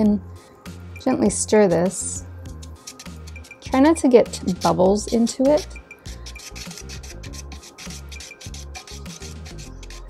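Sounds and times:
background music: 0:00.0 - 0:10.0
stirrer scraping plastic cup: 0:02.5 - 0:10.0.

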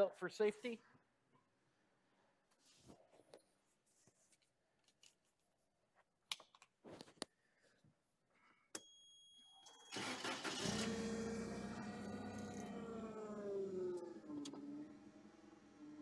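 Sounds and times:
forklift engine starting and idling: 0:09.7 - 0:16.0
clicks: 0:13.9 - 0:14.7.

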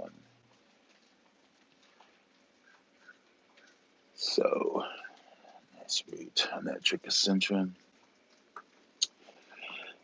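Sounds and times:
faint small ticks: 0:00.1 - 0:04.0.

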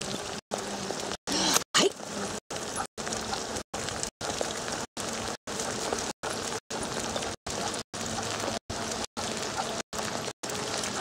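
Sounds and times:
rain: 0:00.0 - 0:11.0.

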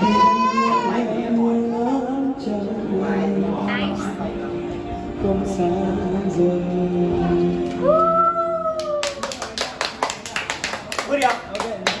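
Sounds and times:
group clapping: 0:08.8 - 0:12.0.

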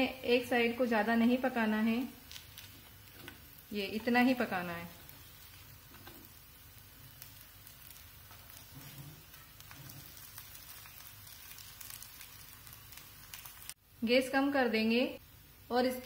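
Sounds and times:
oil sizzling on iron griddle: 0:00.0 - 0:13.9.

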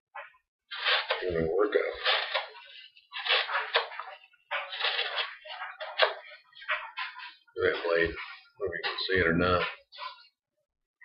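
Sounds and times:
knife cutting cardboard: 0:00.7 - 0:06.4.

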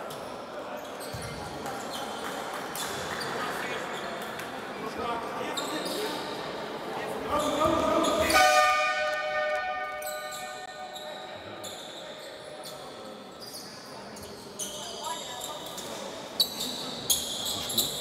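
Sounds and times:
crowd chatter: 0:00.0 - 0:18.0
horn sounding: 0:08.2 - 0:10.6.

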